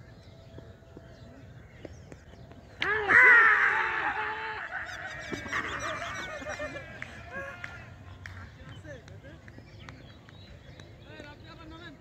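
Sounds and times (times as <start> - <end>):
players shouting: 2.8 - 8.1.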